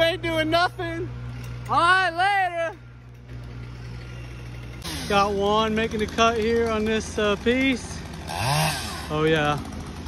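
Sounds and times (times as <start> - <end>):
heavy equipment engine idling: 0.0 - 8.3
chainsaw running: 0.0 - 10.0.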